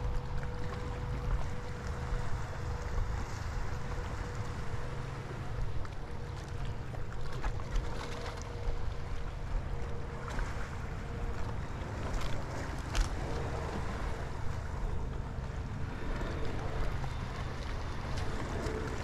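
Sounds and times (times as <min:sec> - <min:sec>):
faint steady hum: 0:00.0 - 0:19.0
sea waves washing: 0:00.0 - 0:19.0.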